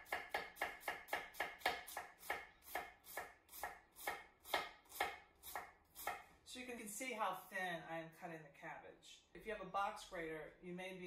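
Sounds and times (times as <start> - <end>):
knife slicing cabbage on wood: 0.0 - 6.3.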